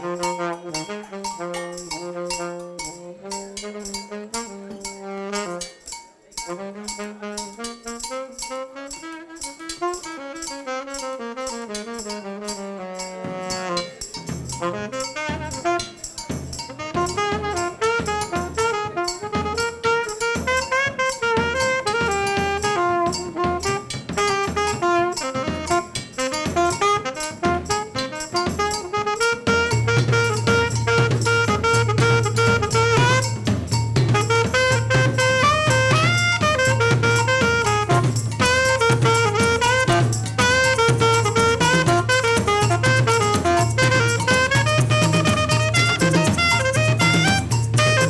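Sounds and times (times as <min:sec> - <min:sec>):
cymbal ticks: 0:00.0 - 0:48.0
jazz-funk band playing: 0:00.0 - 0:48.0
saxophones playing melody: 0:00.0 - 0:48.0.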